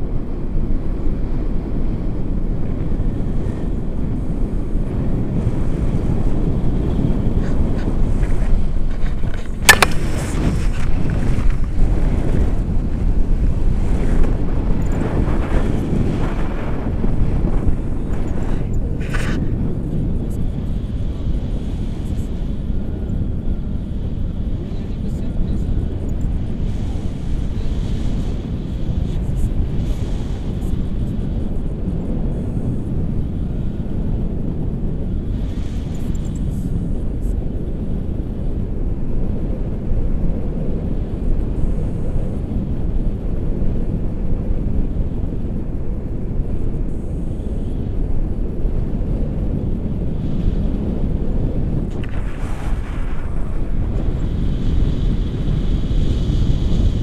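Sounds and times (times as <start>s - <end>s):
wind buffeting microphone: 0.0s - 57.0s.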